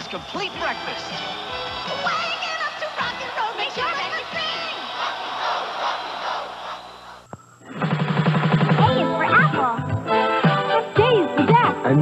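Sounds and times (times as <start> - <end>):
crowd shouting and cheering: 0.0 - 7.3.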